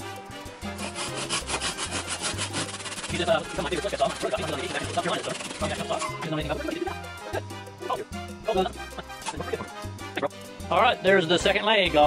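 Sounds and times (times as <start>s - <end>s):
hand saw cutting wood: 0.7s - 6.2s.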